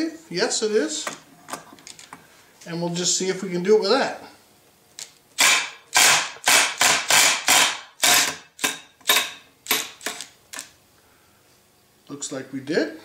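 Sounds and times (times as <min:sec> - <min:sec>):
impact wrench hammering: 0:05.4 - 0:10.2.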